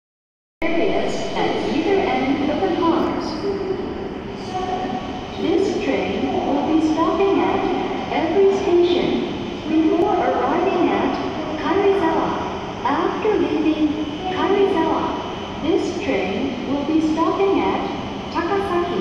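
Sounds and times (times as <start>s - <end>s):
public address voice talking: 0.6s - 19.0s
train pulling in: 0.6s - 19.0s.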